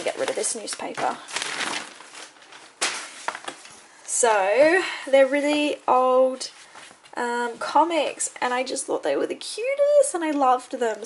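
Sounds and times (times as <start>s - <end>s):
newspaper rustling: 0.0s - 4.0s.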